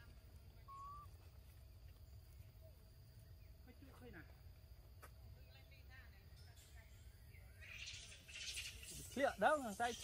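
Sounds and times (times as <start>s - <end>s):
thin animal call: 0.6s - 1.2s.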